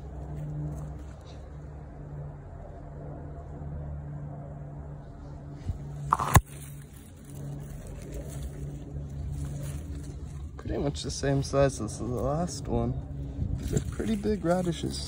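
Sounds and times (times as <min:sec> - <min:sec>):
low mechanical hum: 0:00.0 - 0:15.0
leaves rustling against microphone: 0:05.2 - 0:15.0
stalk snapping: 0:06.0 - 0:10.5.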